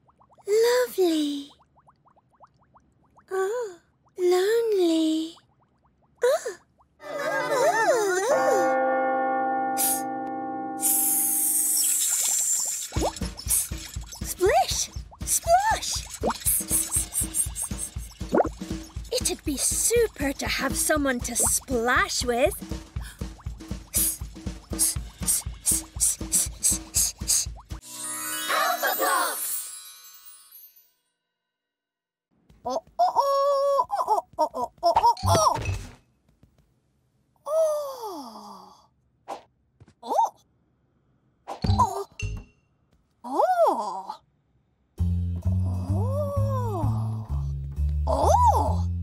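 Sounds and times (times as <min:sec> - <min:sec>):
rising water plop effect: 0:01.6 - 0:03.3, 0:11.6 - 0:19.1
bouncy cartoon music: 0:07.0 - 0:11.7, 0:12.9 - 0:29.8, 0:45.0 - 0:49.0.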